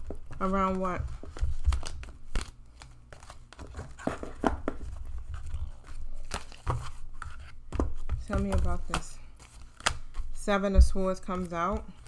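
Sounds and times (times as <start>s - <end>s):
cards being shuffled: 0.0s - 10.4s.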